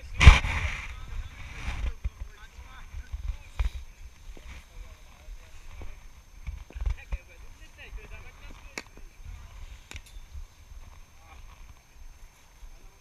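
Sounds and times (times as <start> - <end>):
faint distant voices: 0.0 - 13.0.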